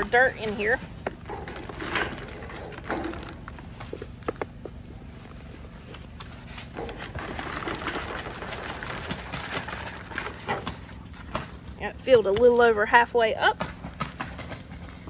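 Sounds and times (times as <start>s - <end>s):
potting soil pouring: 0.0s - 4.6s, 5.3s - 11.2s
plastic pots knocking: 1.0s - 4.8s.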